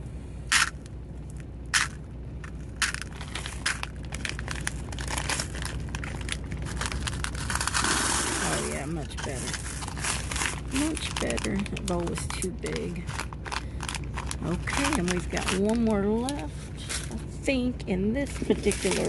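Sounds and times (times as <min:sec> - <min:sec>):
plastic bag crinkling: 0:01.8 - 0:17.2, 0:18.4 - 0:19.0.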